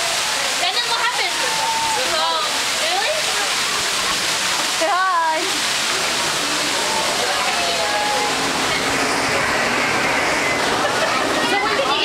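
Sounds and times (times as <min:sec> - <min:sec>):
steady rushing noise: 0:00.5 - 0:12.0.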